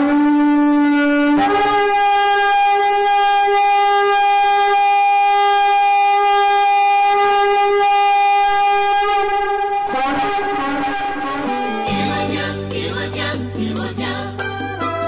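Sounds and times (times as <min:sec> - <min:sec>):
long horn blast: 0:00.8 - 0:12.6
music: 0:09.1 - 0:15.0.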